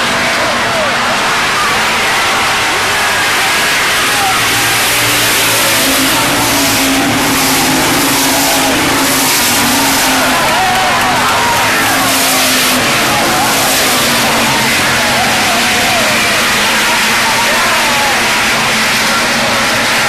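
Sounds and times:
crowd voices: 0.0 - 20.0
race car engines: 0.0 - 20.0.

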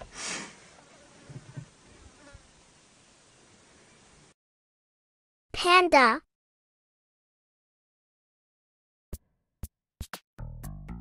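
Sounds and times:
outdoor hiss: 0.0 - 4.4
flies buzzing: 0.8 - 2.7.

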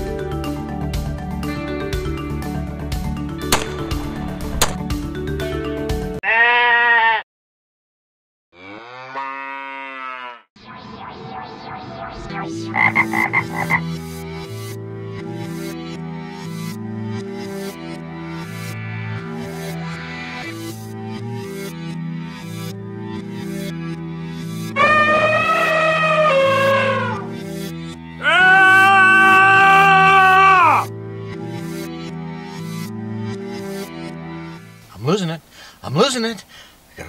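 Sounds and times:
background music: 0.0 - 6.2, 12.4 - 35.4
drawn-out animal call: 6.2 - 7.2, 24.8 - 27.3
electronic music with sweeps: 10.6 - 16.5.

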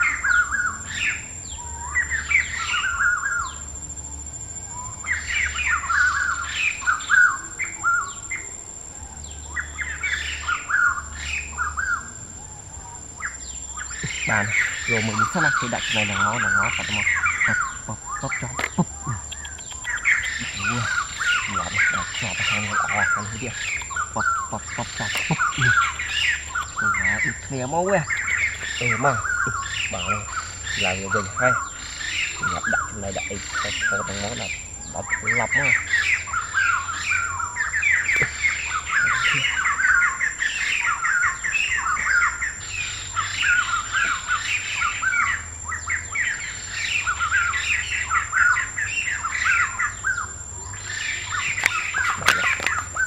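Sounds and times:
birds squawking and chirping: 0.0 - 53.0.

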